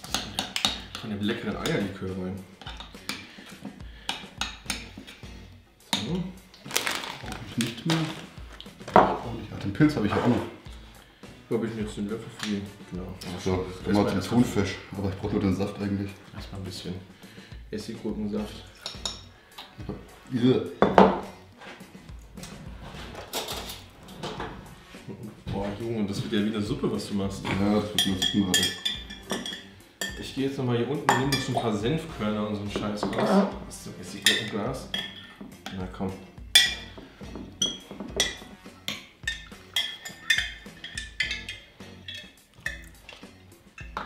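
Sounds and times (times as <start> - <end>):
dishes clattering: 8.8 - 9.3, 18.7 - 20.0, 20.8 - 21.4, 22.5 - 24.7, 27.4 - 30.3, 31.0 - 31.8, 32.8 - 33.5, 34.2 - 35.8, 36.5 - 44.0
metal spoon clinking on ceramic: 18.8 - 19.3, 27.9 - 30.2, 34.2 - 35.8, 36.6 - 37.0, 37.6 - 44.0.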